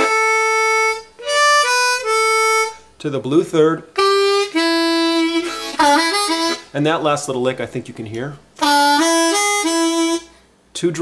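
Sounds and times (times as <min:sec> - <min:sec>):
blues harmonica lick: 0:00.0 - 0:03.1, 0:03.8 - 0:07.0, 0:08.6 - 0:10.6.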